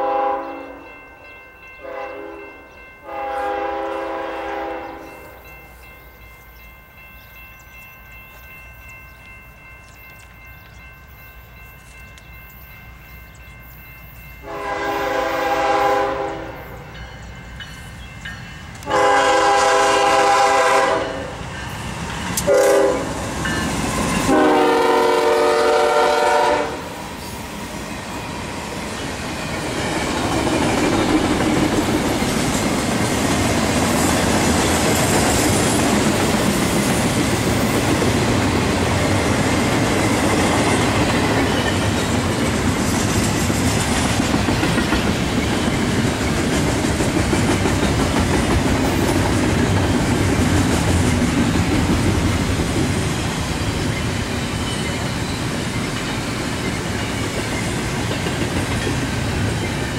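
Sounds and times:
locomotive air horn: 0.0 - 0.8, 1.8 - 5.0, 14.4 - 16.8, 18.8 - 21.3, 22.4 - 23.2, 24.3 - 27.0.

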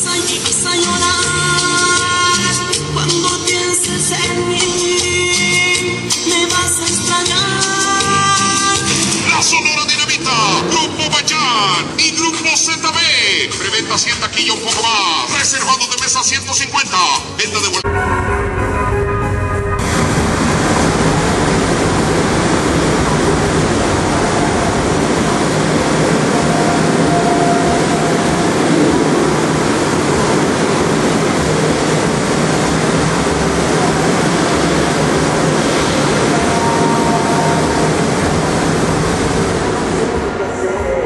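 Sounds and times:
distorted dance music: 0.0 - 17.9.

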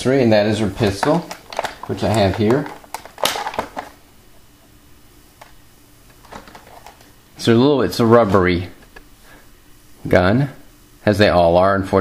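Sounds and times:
faint room hum: 0.0 - 12.0
toy pistol handling rustling: 0.8 - 4.0, 5.4 - 7.2.

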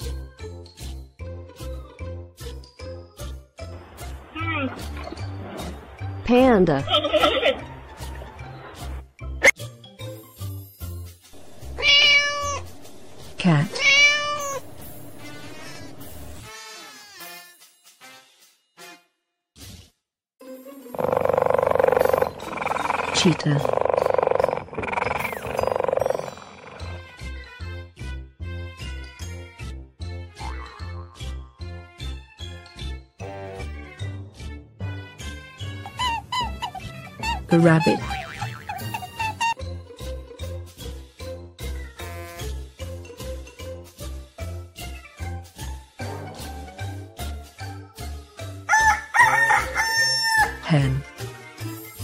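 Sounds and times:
cheetah growling: 21.0 - 27.0
rooster crowing: 48.7 - 50.6.

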